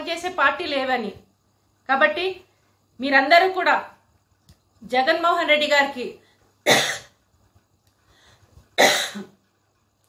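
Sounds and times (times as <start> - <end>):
woman coughing: 6.6 - 7.2, 8.8 - 9.4.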